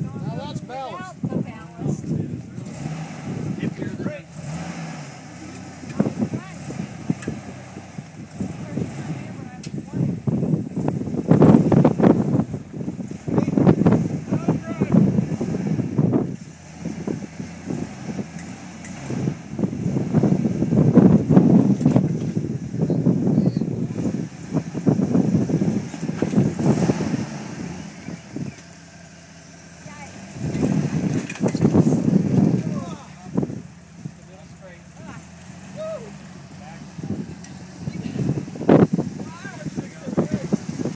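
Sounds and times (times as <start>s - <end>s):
engine revving in bursts: 0.0s - 40.9s.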